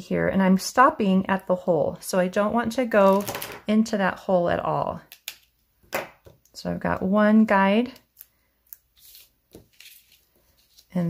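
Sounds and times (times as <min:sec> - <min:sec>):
faint paper rustling: 0:08.2 - 0:11.0.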